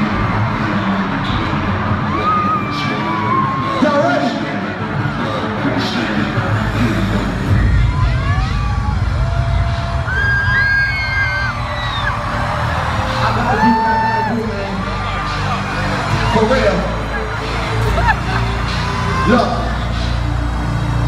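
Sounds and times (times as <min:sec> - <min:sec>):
crowd cheering: 0:00.0 - 0:21.0
live concert music with heavy bass: 0:00.0 - 0:21.0
high screams and whoops: 0:07.5 - 0:14.4.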